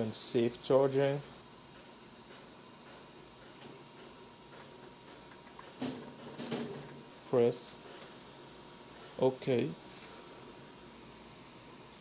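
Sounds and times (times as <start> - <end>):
thin steady whine: 0.0 - 12.0.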